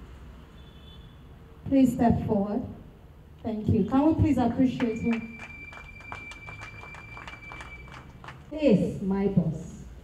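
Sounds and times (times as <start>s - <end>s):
people clapping unevenly: 4.7s - 8.5s.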